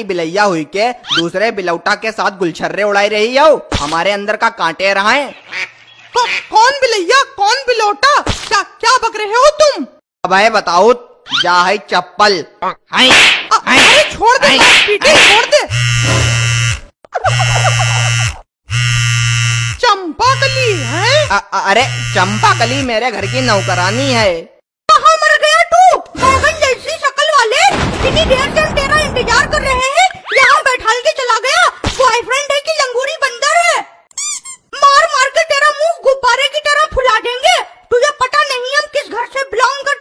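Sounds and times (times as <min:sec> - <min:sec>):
harsh buzzer: 0:15.6 - 0:24.3
high-pitched sped-up cartoon voice: 0:17.1 - 0:18.3, 0:19.8 - 0:24.3
short high squeak: 0:34.2 - 0:34.6.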